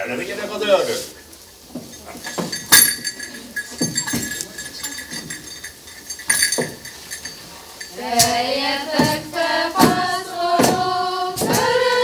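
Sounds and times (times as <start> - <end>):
faint metallic ring: 1.8 - 8.4
objects knocking and clinking: 1.8 - 8.4.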